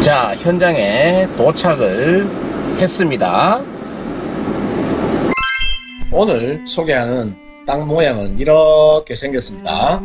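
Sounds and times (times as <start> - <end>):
road and engine rumble in car: 0.0 - 5.3
music with held high tones: 5.3 - 8.1.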